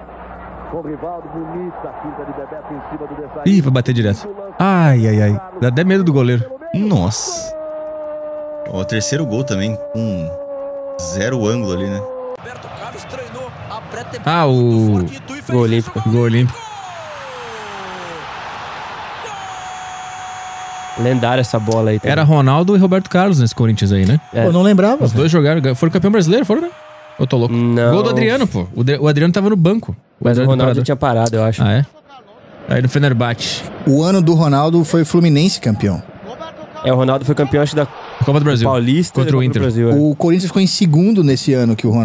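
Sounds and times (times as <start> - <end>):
stadium crowd roar: 0.0 - 10.0, 11.2 - 28.6
falling tone: 0.0 - 12.5
man speaking softly: 0.8 - 7.5, 8.7 - 10.4, 11.0 - 13.4, 21.0 - 31.9.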